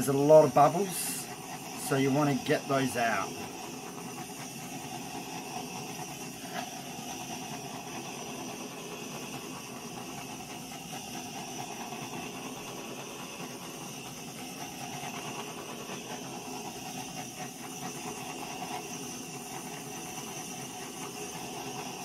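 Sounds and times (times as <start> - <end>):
butane torch hissing: 0.0 - 22.0.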